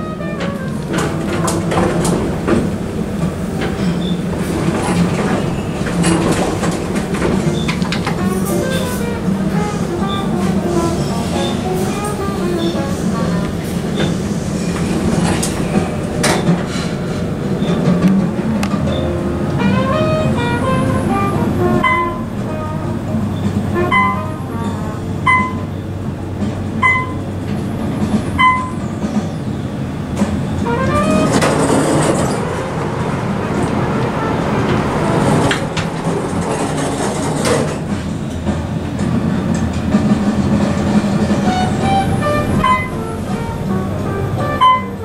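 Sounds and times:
elevator car running rumble: 0.0s - 45.0s.

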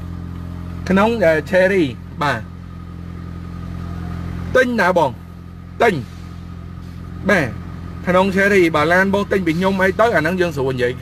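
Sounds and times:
engine idling hum: 0.0s - 11.0s.

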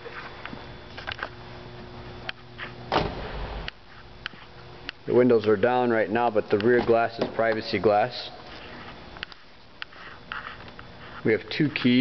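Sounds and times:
car door shutting: 2.9s - 3.7s.

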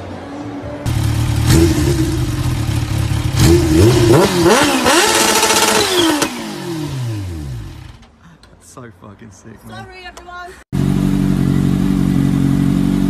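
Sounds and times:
motorcycle engine revving: 0.9s - 8.0s, 10.8s - 13.0s.

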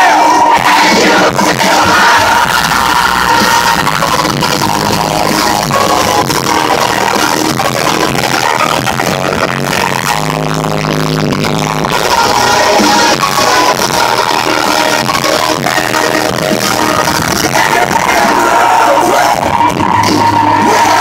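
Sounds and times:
loud amplified rock band: 0.0s - 21.0s.

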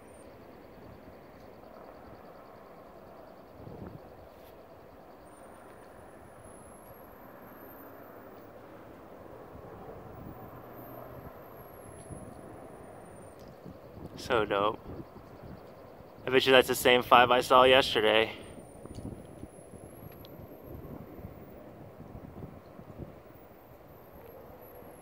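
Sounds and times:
distant helicopters droning: 0.0s - 25.0s.

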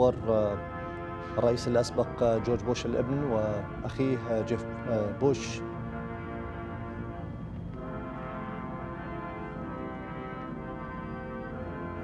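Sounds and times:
brass band playing slow chords: 0.0s - 12.0s.

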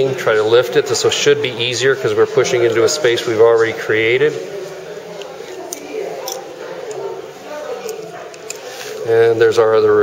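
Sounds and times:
soft background voices: 0.0s - 10.0s.

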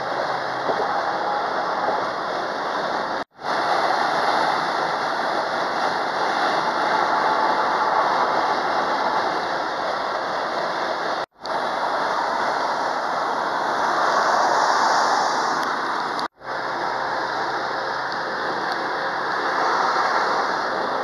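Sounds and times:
car road and wind noise: 0.0s - 21.0s.

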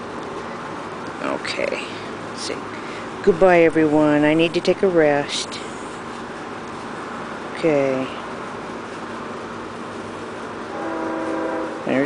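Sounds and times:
outdoor background hiss: 0.0s - 12.0s
distant horn note: 10.7s - 12.0s.

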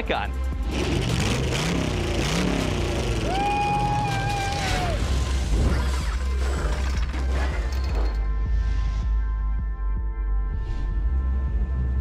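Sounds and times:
car engine revving: 0.5s - 7.6s.

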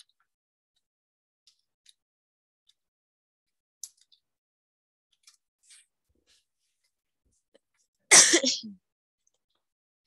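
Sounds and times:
person sneezing: 8.1s - 8.8s.

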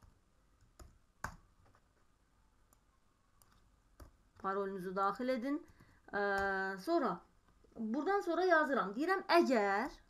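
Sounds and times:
mouse clicks: 2.7s - 4.6s.

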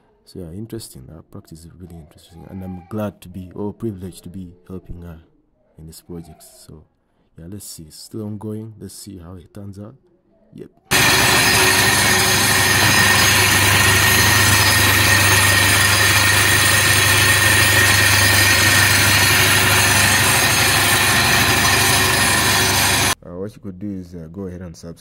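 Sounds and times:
sieve shaker vibrating rattle: 10.9s - 23.2s.

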